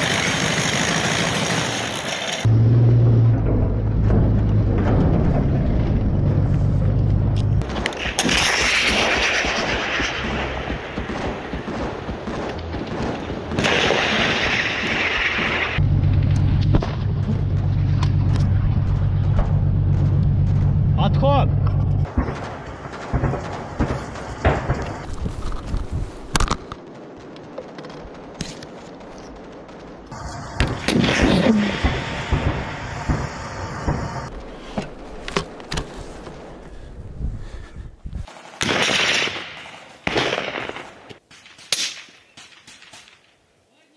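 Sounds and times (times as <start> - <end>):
explosions: 1.6 - 35.6, 38.6 - 41.2
gunfire: 7.6 - 15.8, 22.0 - 25.1, 30.1 - 34.4, 38.6 - 43.3.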